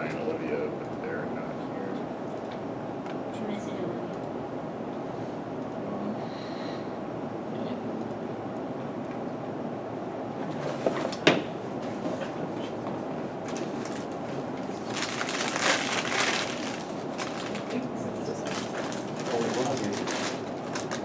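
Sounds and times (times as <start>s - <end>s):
steady room hum: 0.0s - 21.0s.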